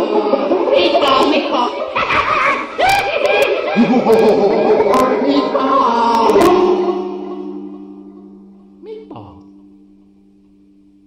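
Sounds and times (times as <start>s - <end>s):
voices and instruments on chord: 3.2s - 11.0s.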